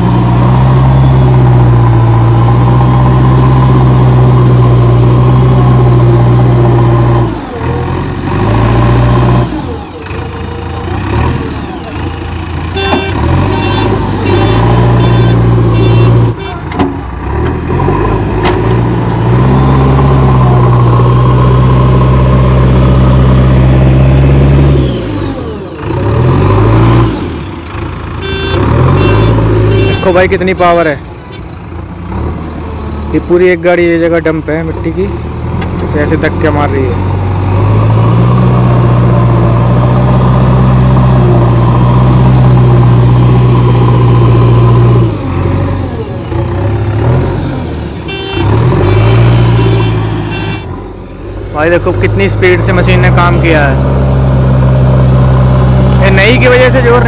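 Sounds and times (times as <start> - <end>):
diesel engine working hard: 0.0 - 57.0
rapid high beeps: 12.8 - 16.5, 28.2 - 30.2, 48.1 - 50.6.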